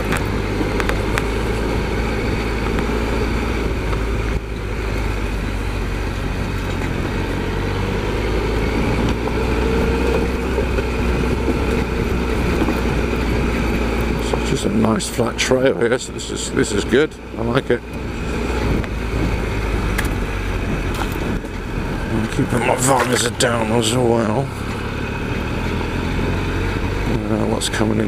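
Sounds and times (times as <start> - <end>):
motorcycle engine running: 0.0 - 28.0.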